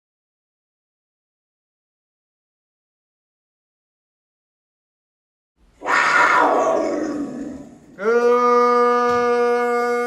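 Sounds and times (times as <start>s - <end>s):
big cat roar: 5.8s - 7.8s.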